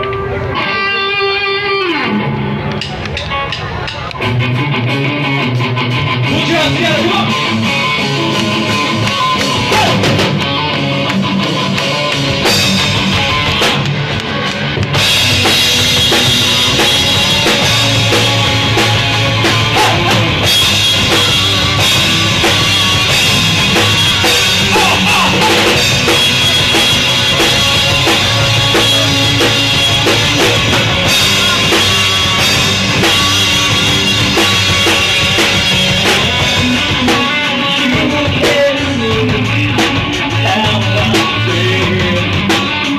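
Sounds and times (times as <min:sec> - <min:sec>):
rock band playing live: 0:00.0 - 0:42.9.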